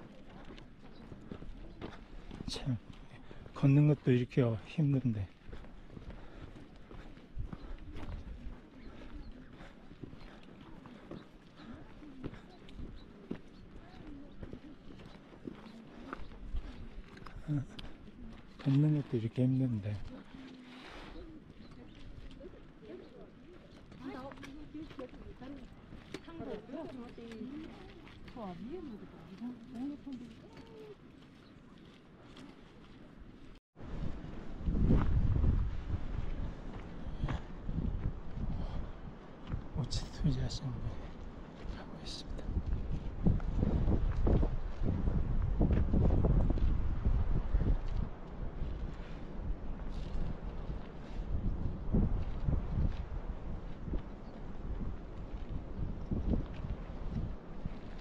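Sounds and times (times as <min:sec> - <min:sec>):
footsteps on gravel: 0:00.0 - 0:39.7, 0:41.0 - 0:58.0
wind buffeting microphone: 0:05.4 - 0:11.3, 0:33.3 - 0:58.0
faint voices: 0:06.2 - 0:19.0
people talking: 0:21.6 - 0:31.0.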